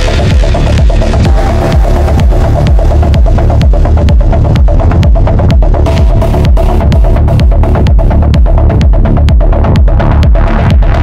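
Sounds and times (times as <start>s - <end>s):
melodic techno music: 0.0s - 11.0s.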